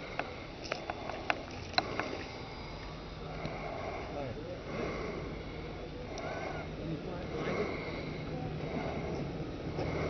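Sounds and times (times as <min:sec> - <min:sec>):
distant model airplane engine whine: 0:00.0 - 0:10.0.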